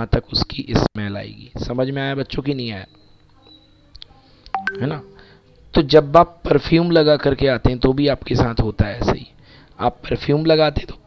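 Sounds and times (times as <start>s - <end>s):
short electronic beeps: 4.6s - 5.4s.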